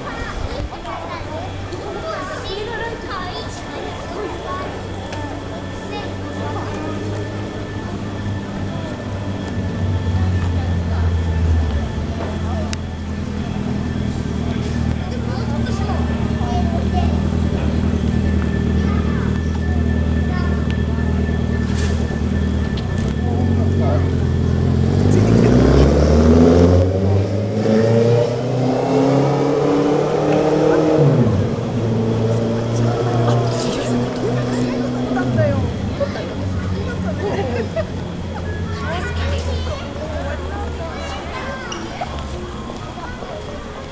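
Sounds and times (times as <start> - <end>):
engine revving: 3.9 - 41.3.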